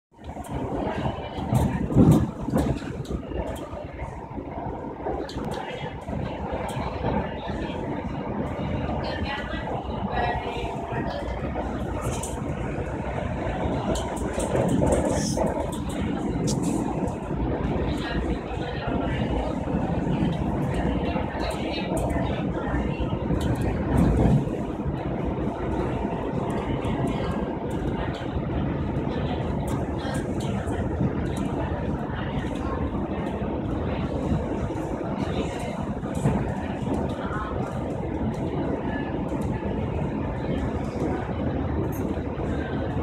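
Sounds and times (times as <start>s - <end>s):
train low rumble: 0.1s - 43.0s.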